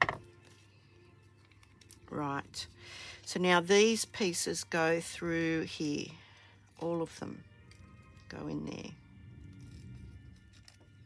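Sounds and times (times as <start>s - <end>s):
knock on table: 0.0s - 0.2s
paper and ribbon handling: 0.0s - 2.3s, 9.4s - 11.0s.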